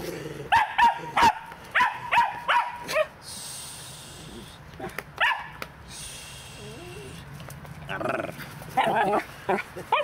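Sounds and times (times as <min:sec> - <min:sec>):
small dog barking in high yips: 0:00.5 - 0:03.2, 0:05.2 - 0:05.6.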